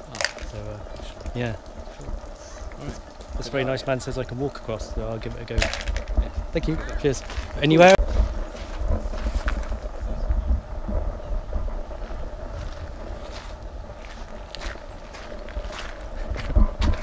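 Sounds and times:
footsteps on stones: 0.0s - 0.8s, 5.6s - 9.8s, 12.5s - 17.0s
faint steady hum: 0.0s - 17.0s
wind rumbling on microphone: 0.0s - 17.0s.

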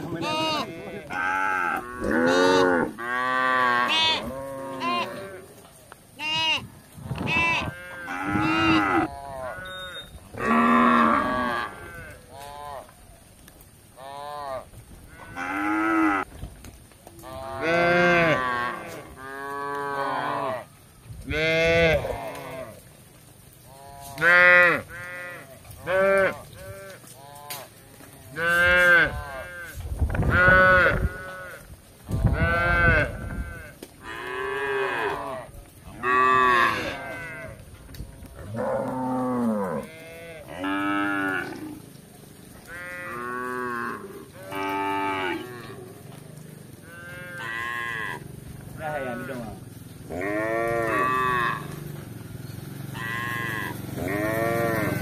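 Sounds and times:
cows mooing: 0.0s - 5.6s, 6.2s - 13.0s, 14.0s - 16.3s, 17.2s - 20.7s, 21.3s - 22.8s, 23.7s - 31.6s, 32.2s - 37.6s, 38.3s - 55.0s.

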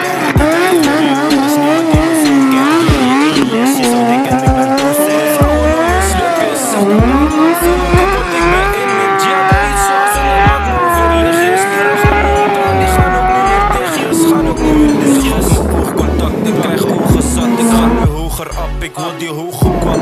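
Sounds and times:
motorcycle engine revving: 0.0s - 18.9s, 19.6s - 20.0s
music with heavy bass beat: 0.0s - 20.0s.

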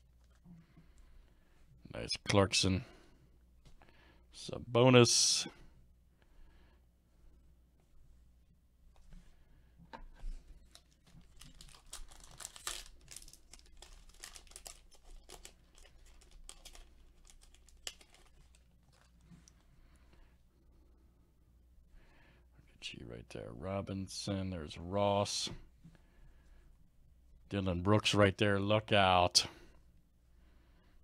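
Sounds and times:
plastic wrapper tearing and crinkling: 10.6s - 19.2s
cards being shuffled: 10.6s - 19.4s.

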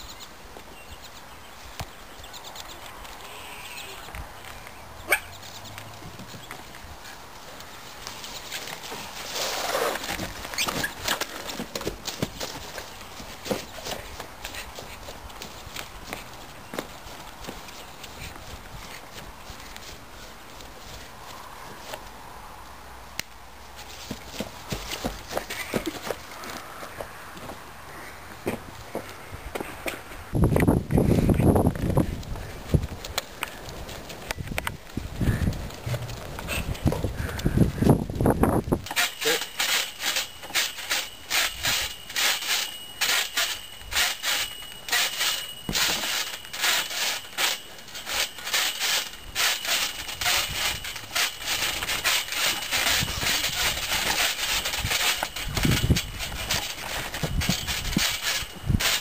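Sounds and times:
steady outdoor hiss: 0.0s - 59.0s
trampoline springs creaking: 0.0s - 59.0s
footsteps dancing on grass: 4.1s - 27.7s, 30.3s - 38.8s.

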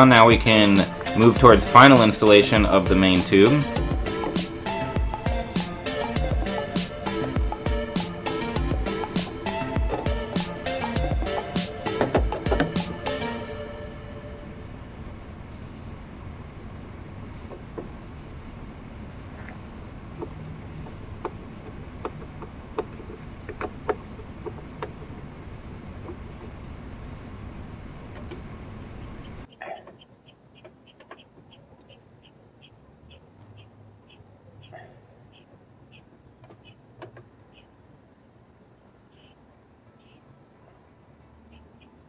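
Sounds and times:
outdoor background noise: 0.0s - 42.0s
faint high chirp: 40.0s - 40.2s.

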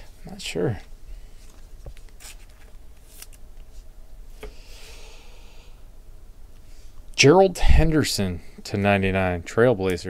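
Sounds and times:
cards sliding against each other: 1.4s - 4.6s.

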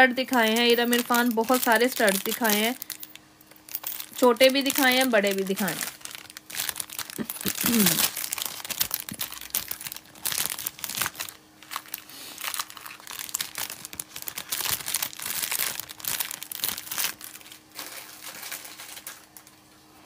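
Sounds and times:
packaging crinkling: 0.2s - 19.6s.

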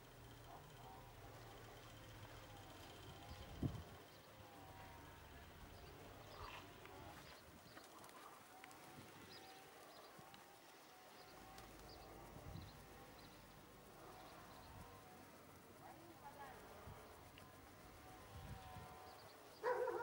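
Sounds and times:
faint pigeon cooing: 0.0s - 15.0s, 17.9s - 20.0s.

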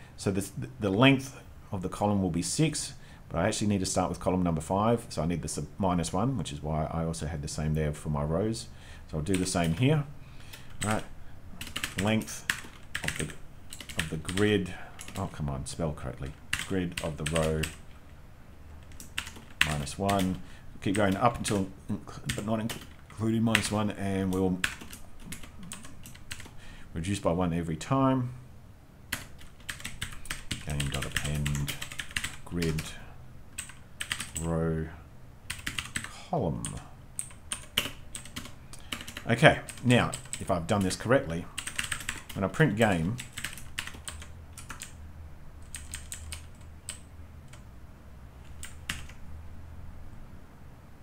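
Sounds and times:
computer keyboard typing: 9.3s - 9.9s, 10.5s - 15.3s, 16.3s - 17.9s, 18.8s - 21.7s, 22.3s - 26.6s, 29.1s - 32.9s, 33.6s - 34.5s, 35.5s - 41.0s, 41.6s - 42.4s, 43.2s - 45.0s, 45.6s - 47.6s, 48.5s - 49.2s.

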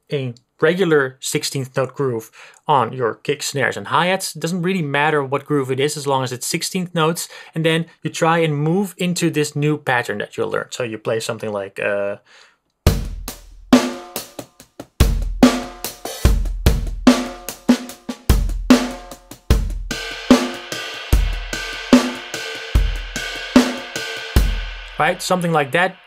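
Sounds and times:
drum groove: 12.8s - 26.0s.

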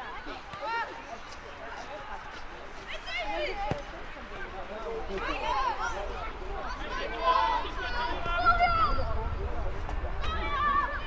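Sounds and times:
steady low rumble: 8.1s - 11.0s.

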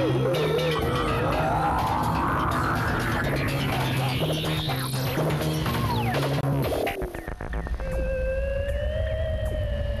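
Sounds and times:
electronic theme music: 0.0s - 10.0s.

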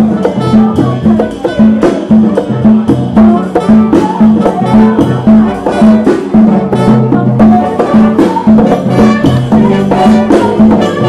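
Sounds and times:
drums: 0.0s - 11.0s
hand percussion: 0.0s - 11.0s
trumpet leading: 0.0s - 11.0s.

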